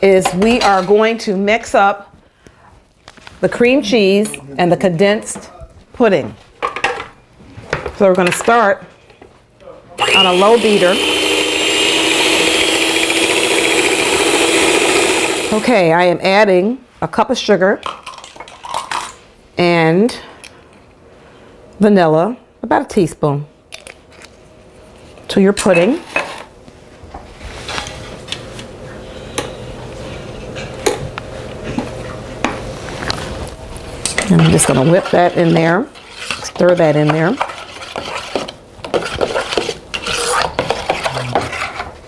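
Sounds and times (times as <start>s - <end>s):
stand mixer motor whirring: 10.0s - 15.7s
spatula scraping metal bowl: 34.2s - 41.9s.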